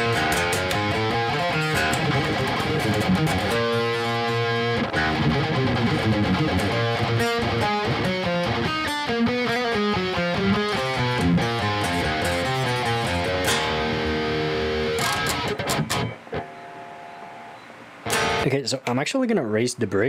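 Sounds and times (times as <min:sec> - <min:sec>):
electric guitar through amp: 0:00.0 - 0:18.6.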